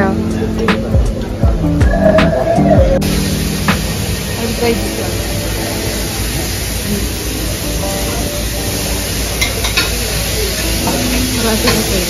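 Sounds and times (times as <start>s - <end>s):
meat sizzling on grill: 3.1s - 12.0s.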